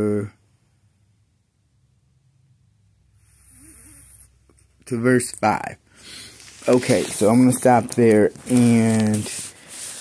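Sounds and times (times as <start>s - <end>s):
man breathing in: 5.9s - 6.5s.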